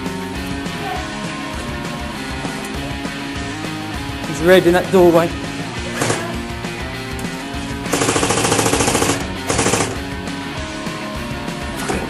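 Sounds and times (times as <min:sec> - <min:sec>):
background music: 0:00.0 - 0:12.0
airsoft gun firing full auto: 0:07.9 - 0:10.0.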